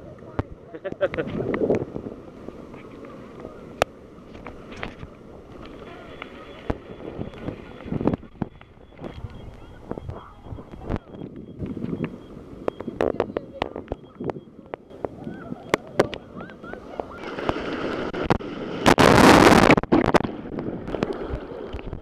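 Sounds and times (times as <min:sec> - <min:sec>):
sea water splashing against camera: 0:00.0 - 0:22.0
wave rushing over camera: 0:14.9 - 0:22.0.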